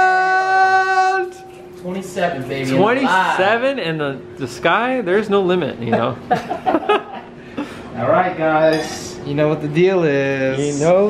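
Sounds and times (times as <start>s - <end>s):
man yelling whoa: 0.0s - 1.4s.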